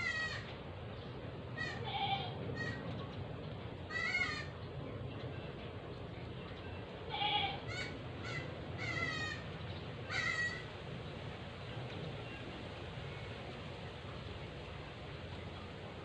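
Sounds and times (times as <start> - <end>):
goat bleating: 1.6 - 2.8, 7.1 - 9.4.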